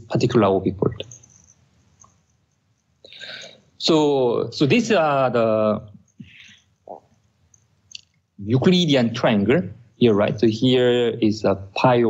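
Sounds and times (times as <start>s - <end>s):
faint breath: 3.0s - 3.8s, 6.2s - 6.8s.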